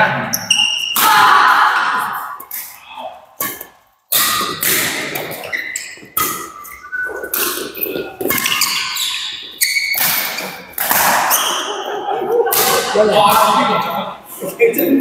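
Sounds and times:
shoes squeaking on court: 0:00.3 - 0:01.0, 0:03.4 - 0:11.9
racket hitting shuttlecock: 0:03.4 - 0:06.7, 0:07.3 - 0:11.8, 0:12.5 - 0:13.4.

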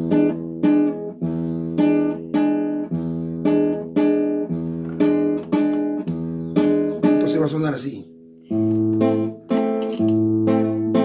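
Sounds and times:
classical guitar strumming waltz: 0:00.0 - 0:11.0.

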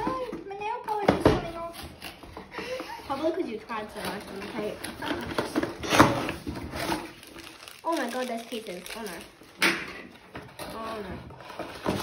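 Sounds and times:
cardboard rustling and scraping: 0:01.2 - 0:09.2, 0:10.1 - 0:12.0
cardboard box ripping open: 0:05.0 - 0:08.8.

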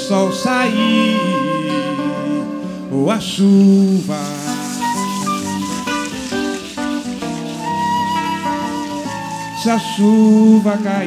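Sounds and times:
guitar: 0:00.0 - 0:11.0
percussion: 0:04.0 - 0:11.0.

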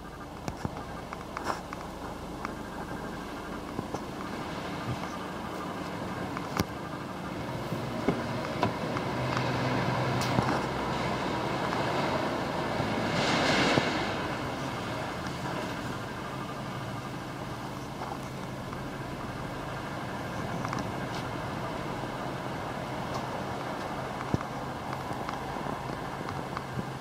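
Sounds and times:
steady low hum: 0:00.0 - 0:27.0
vehicle passing: 0:07.1 - 0:17.2.

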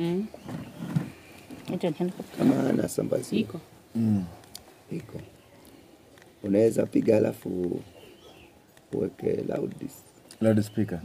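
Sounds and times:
man speaking: 0:02.4 - 0:05.3, 0:06.4 - 0:07.9, 0:08.9 - 0:11.0.

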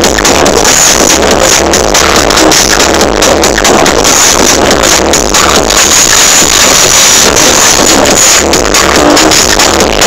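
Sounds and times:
loud psytrance music: 0:00.0 - 0:10.0.

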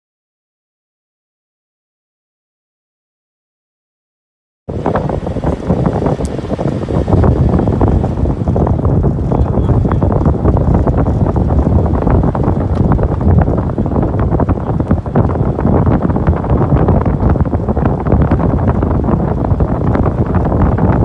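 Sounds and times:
wind buffeting microphone: 0:04.7 - 0:21.0.

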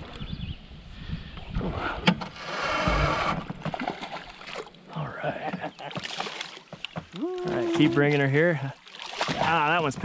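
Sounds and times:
fish splashing and thrashing: 0:03.4 - 0:04.9, 0:05.6 - 0:10.0.

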